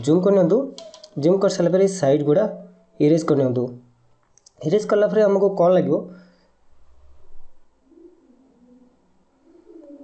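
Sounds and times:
pigeon cooing: 7.1 - 10.0.

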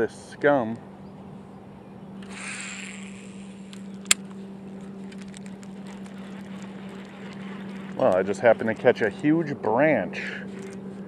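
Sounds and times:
steady low hum: 0.0 - 11.0
fishing line hissing off reel: 2.2 - 4.2
sharp click: 3.7 - 4.4
reel ticking while wound: 5.1 - 9.0.

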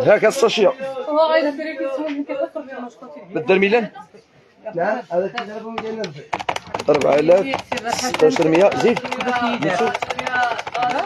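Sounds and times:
sharp clicks or taps: 5.4 - 11.0.

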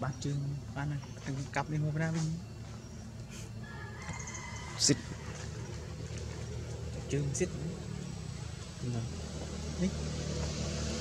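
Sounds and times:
people talking: 0.0 - 2.5, 7.0 - 7.8, 8.8 - 10.0
vehicle engine humming: 0.0 - 11.0.

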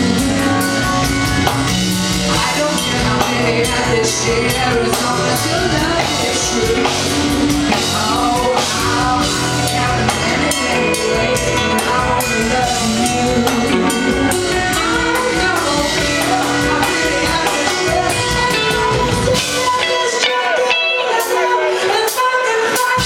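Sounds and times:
funk-rock band playing: 0.0 - 23.0
woman singing: 0.0 - 23.0.

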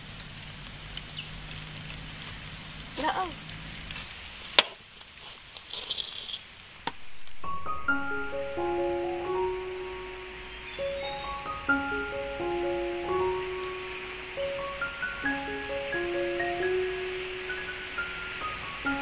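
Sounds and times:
forest insects droning: 0.0 - 19.0
gentle melodic background music: 7.0 - 19.0.

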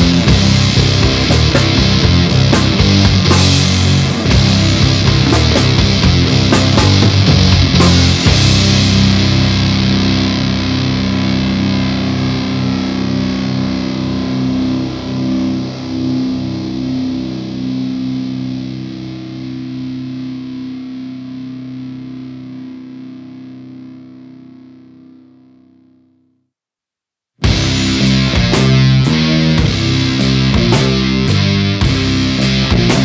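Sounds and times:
distorted electric guitar chord ringing: 0.0 - 26.0, 27.4 - 33.0.

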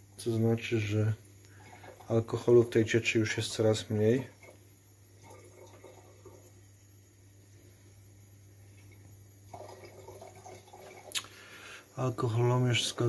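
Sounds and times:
steady low hum: 0.0 - 13.0
liquid dripping into cylinder: 0.8 - 2.8, 3.5 - 6.7, 8.5 - 11.8.

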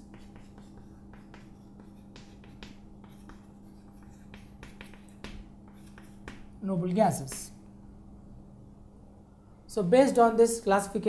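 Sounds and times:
chalk scratching on blackboard: 0.0 - 6.5
steady low hum: 0.0 - 11.0.

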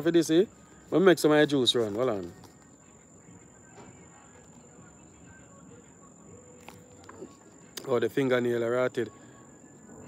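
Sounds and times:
man speaking: 0.0 - 2.4, 7.8 - 9.2
insects droning: 0.0 - 10.0.

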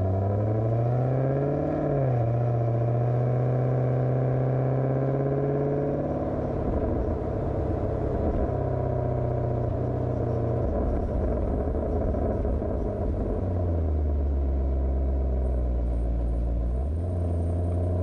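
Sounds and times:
car engine and exhaust: 0.0 - 18.0.

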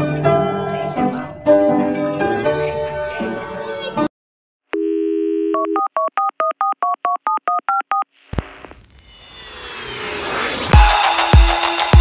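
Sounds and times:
music: 0.0 - 4.1, 10.5 - 12.0
rising whoosh: 8.5 - 11.9.

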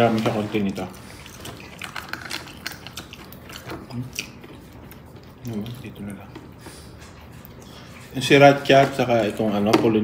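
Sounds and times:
crunchy chewing: 0.9 - 9.5.

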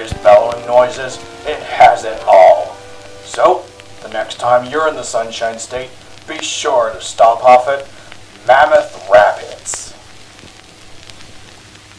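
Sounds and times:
man narrating: 0.0 - 10.0
crackling hiss with clicks: 0.0 - 11.9
low steady hum: 0.0 - 11.9.

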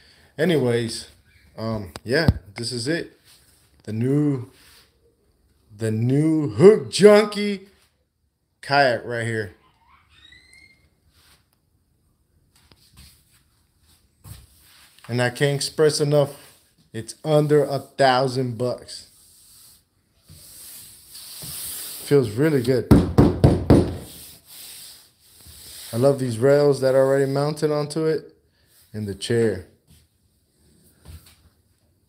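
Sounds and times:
faint rubbing and handling noise: 0.4 - 5.7, 7.6 - 8.2, 10.9 - 11.8, 12.4 - 22.8, 23.9 - 32.0
faint rising squeak: 9.6 - 11.0.

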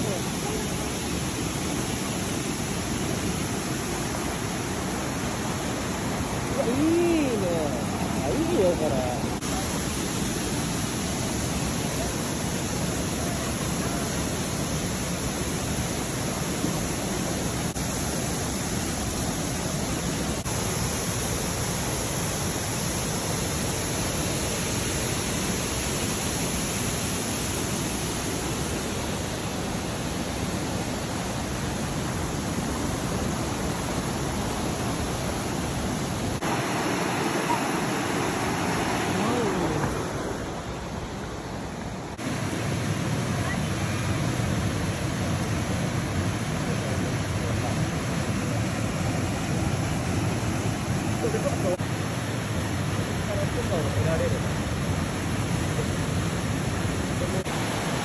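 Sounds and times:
waterfall and stream rushing: 0.0 - 58.0.

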